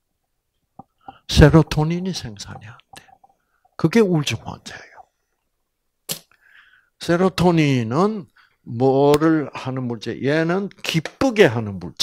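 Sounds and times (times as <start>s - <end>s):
faint breathy sound: 6.3s - 7.0s.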